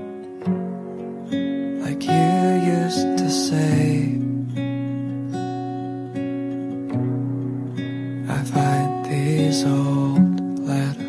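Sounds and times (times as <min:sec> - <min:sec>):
gentle acoustic guitar song: 0:00.0 - 0:11.0.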